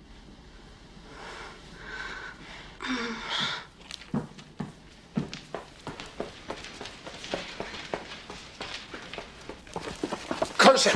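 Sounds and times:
running footsteps on hard floor: 0:03.8 - 0:10.9.

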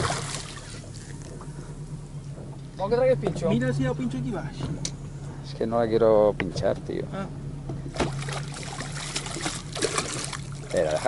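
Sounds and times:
fish thrashing at surface: 0:00.0 - 0:00.8, 0:08.0 - 0:10.8
water splashing against boat: 0:00.0 - 0:05.3, 0:07.6 - 0:11.0
low steady hum: 0:00.0 - 0:11.0.

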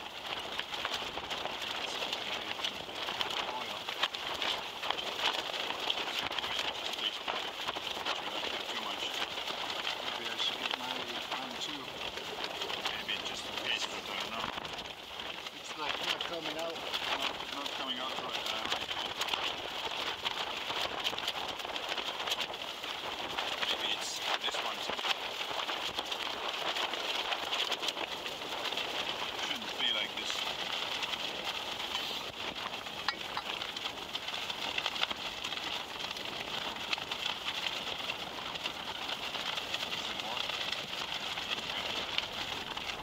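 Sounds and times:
crackling and ticking pot: 0:00.0 - 0:43.0
muffled voice: 0:01.6 - 0:14.7, 0:15.4 - 0:19.4, 0:23.6 - 0:25.1, 0:29.3 - 0:30.5, 0:39.9 - 0:40.6, 0:41.5 - 0:43.0.

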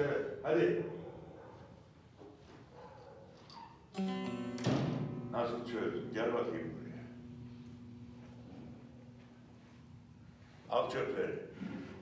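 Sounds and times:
plucked string ringing note: 0:04.0 - 0:09.4.

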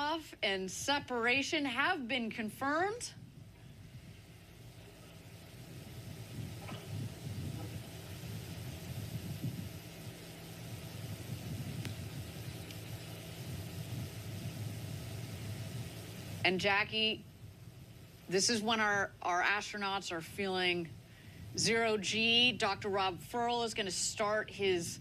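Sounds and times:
low steady hum: 0:00.0 - 0:25.0
faint rumble: 0:02.5 - 0:23.5.

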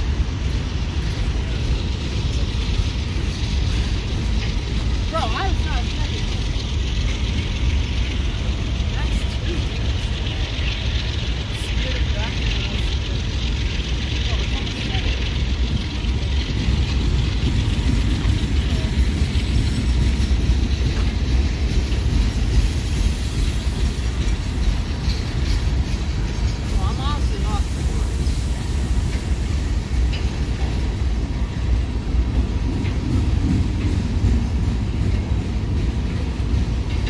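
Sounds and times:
diesel locomotives running: 0:00.0 - 0:37.0
freight cars rolling on rails: 0:00.0 - 0:37.0.

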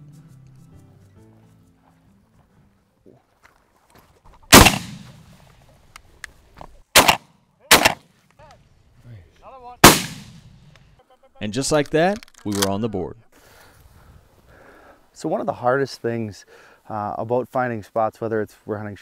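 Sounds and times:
shotgun shots: 0:04.5 - 0:05.3, 0:07.0 - 0:08.1, 0:09.8 - 0:10.7.

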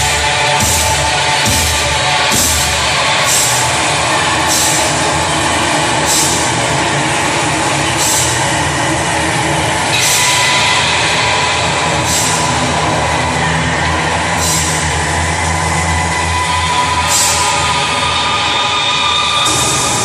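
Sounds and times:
distorted electric guitars with feedback: 0:00.0 - 0:20.0
low drone: 0:00.0 - 0:20.0.

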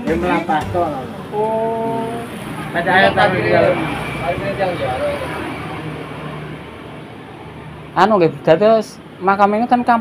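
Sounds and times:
road vehicle passing by: 0:00.0 - 0:10.0.

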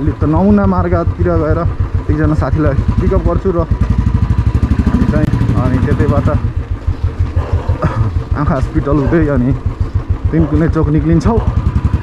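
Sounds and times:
motorcycle engine running: 0:00.0 - 0:12.0
person speaking: 0:08.0 - 0:11.6.

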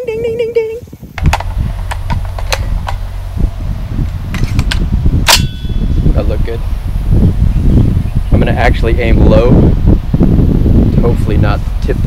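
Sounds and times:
metallic ringing tone: 0:05.3 - 0:06.0.

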